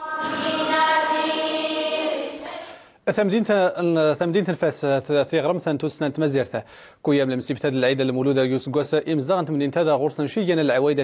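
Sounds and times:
children chanting in unison: 0.0 - 2.9.

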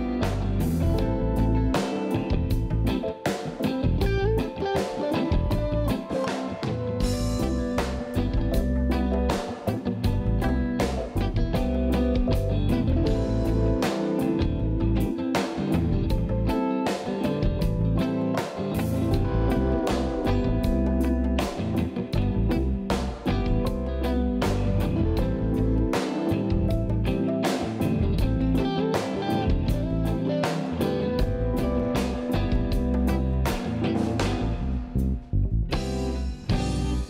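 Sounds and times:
drum kit steady beat: 0.0 - 37.0
electric guitar: 0.0 - 37.0
low bass notes: 0.0 - 37.0
reggae band playing: 0.0 - 37.0.

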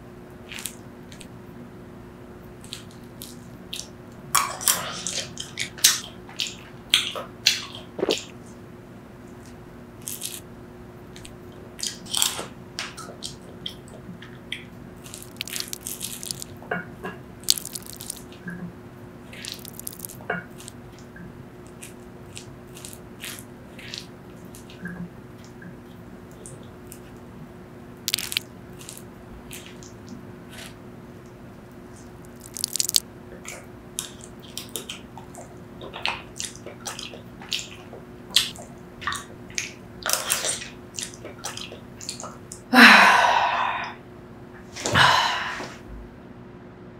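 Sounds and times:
soft chewing: 2.6 - 8.6, 9.2 - 10.4, 11.1 - 27.4, 28.0 - 42.7
wet mouth clicks: 7.5 - 8.4, 14.5 - 16.5, 17.5 - 18.3, 19.4 - 20.8, 28.1 - 29.0, 32.2 - 42.6
spoon scooping wet fruit flesh: 15.0 - 16.6, 17.4 - 18.3, 32.0 - 33.0.

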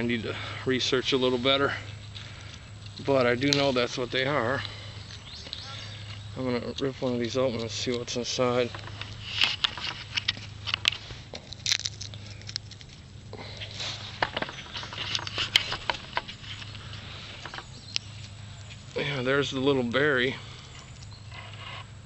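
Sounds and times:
rustling leaves: 0.0 - 22.0
papery husk crackling and tearing: 8.8 - 19.0.

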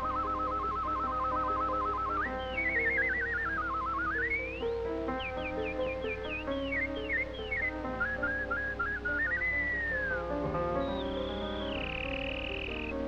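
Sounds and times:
cartoon orchestral music: 0.0 - 13.0
high whistled chirps and trills: 0.0 - 13.0.

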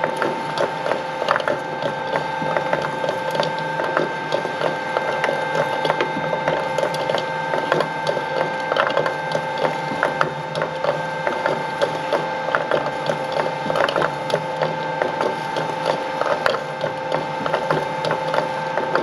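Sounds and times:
shredder drive whine: 0.0 - 19.0.

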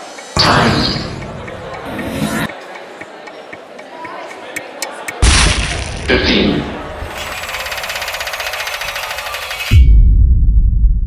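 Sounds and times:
rapid mechanical rattle: 7.0 - 9.7.

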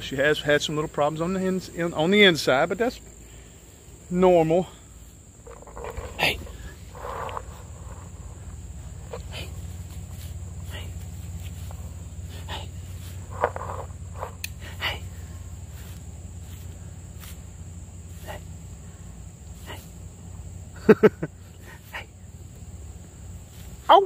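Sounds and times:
steady low hum: 0.0 - 24.0
rustles in grass: 3.2 - 24.0.

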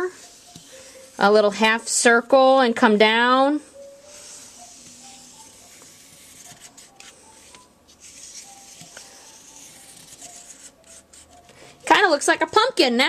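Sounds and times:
marker scratching on paper: 4.1 - 11.5.

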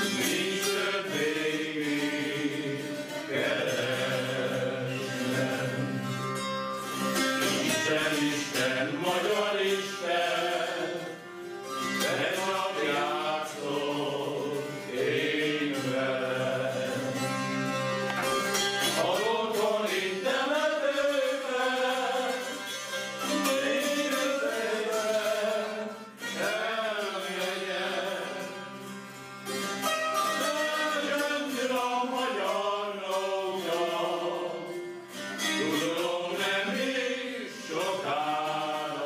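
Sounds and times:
men singing slow folk song: 0.0 - 17.9, 18.9 - 28.9, 30.2 - 39.0
zither droning and plucking: 0.0 - 39.0.

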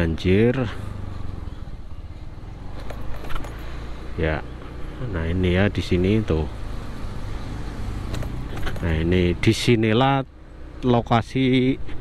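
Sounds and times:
car engine running: 0.0 - 10.2.

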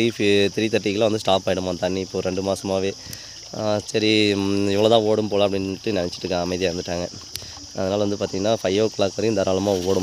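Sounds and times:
insects chirring: 0.0 - 10.0
man talking: 0.0 - 10.0.

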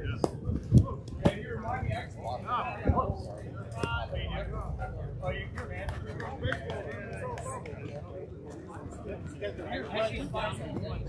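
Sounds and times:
men's voices: 0.0 - 11.0.

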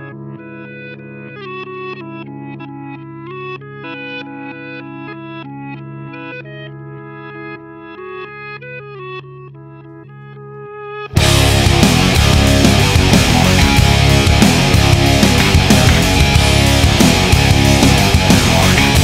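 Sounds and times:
electric guitar picking notes: 0.0 - 19.0
held low notes: 11.2 - 19.0.

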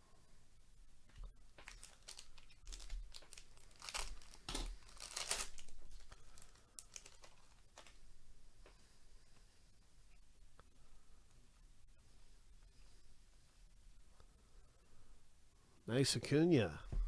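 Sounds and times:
wrapper tearing and crinkling: 1.6 - 8.0.

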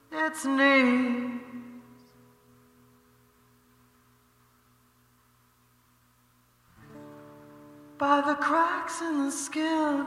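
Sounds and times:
faint low hum: 0.0 - 10.0
acoustic guitar chord: 6.6 - 10.0.

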